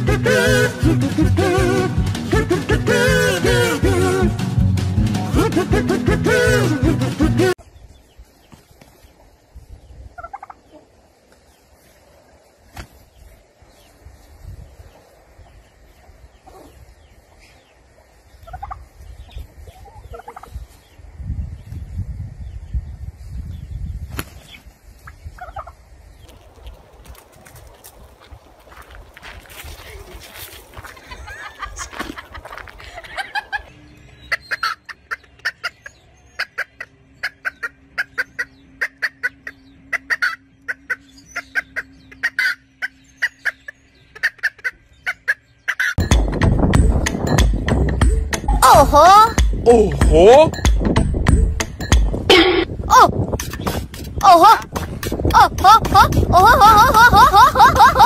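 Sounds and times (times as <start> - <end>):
turkey gobbling: 10.2 - 10.9, 18.4 - 18.9, 19.6 - 20.5, 25.4 - 27.5, 34.3 - 46.0
rooster clucking: 34.3 - 46.1.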